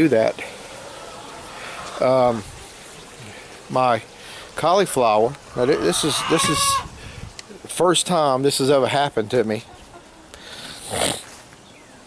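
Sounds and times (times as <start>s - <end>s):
short nasal breath: 10.4s - 11.3s.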